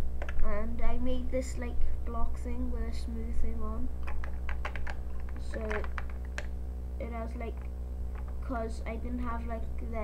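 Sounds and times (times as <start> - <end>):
steady low hum: 0.0 - 10.0
plastic bricks clicking: 4.0 - 6.5.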